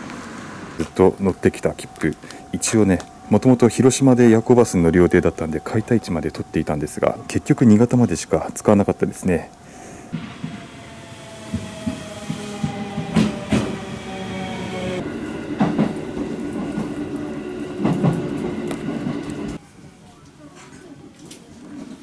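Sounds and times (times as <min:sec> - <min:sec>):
train rumble: 0:00.0 - 0:19.6
wheels clacking over rail joints: 0:00.0 - 0:19.6
whine falling in pitch: 0:00.8 - 0:15.0.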